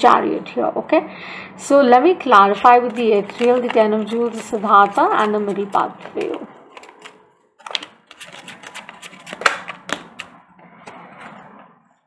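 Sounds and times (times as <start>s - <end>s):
cards being shuffled: 2.6s - 10.4s.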